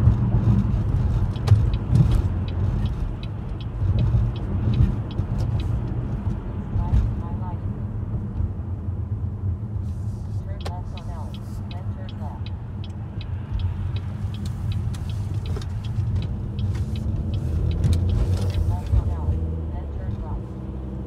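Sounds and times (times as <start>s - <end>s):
road and engine rumble: 0.0s - 21.0s
fast regular high ticking: 1.3s - 5.8s, 10.6s - 19.2s.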